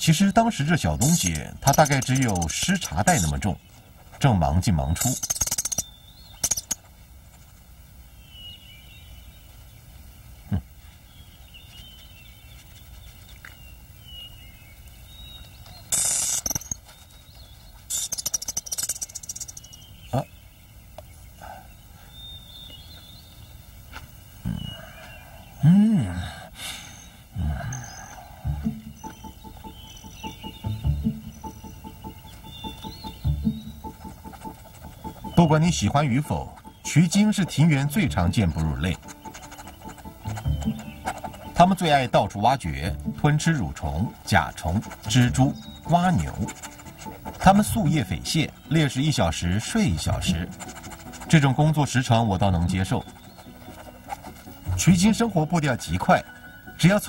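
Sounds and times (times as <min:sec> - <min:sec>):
bird-like chirps: 0:00.0 - 0:07.0, 0:08.1 - 0:57.0
rustling hisses: 0:14.7 - 0:19.8, 0:43.9 - 0:55.3
low vocal sounds: 0:25.6 - 0:26.6, 0:27.3 - 0:28.8
soft background music: 0:27.5 - 0:57.0.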